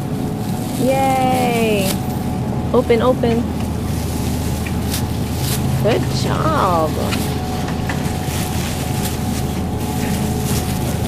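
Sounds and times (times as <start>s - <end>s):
plastic bag crinkling: 0.0s - 2.2s, 3.7s - 11.0s
refrigerated display cases humming: 0.0s - 11.0s.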